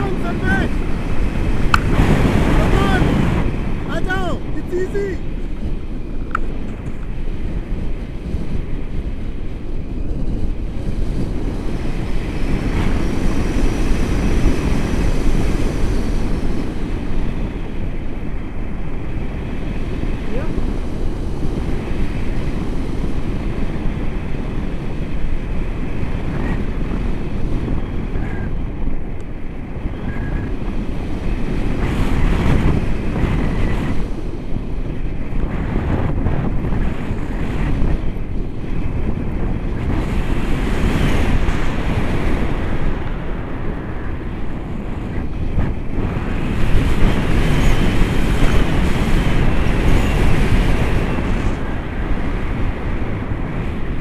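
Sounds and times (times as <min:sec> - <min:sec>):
wind rushing over microphone: 0:00.0 - 0:54.0.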